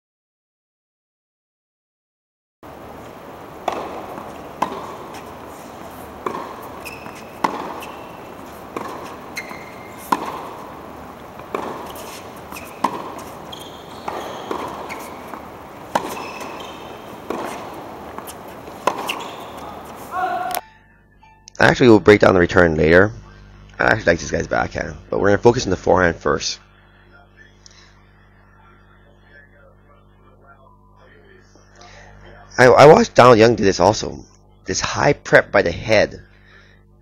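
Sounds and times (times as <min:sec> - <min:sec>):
tennis ball hits: 0:02.7 - 0:20.6
sneaker squeaks on court: 0:03.4 - 0:20.2.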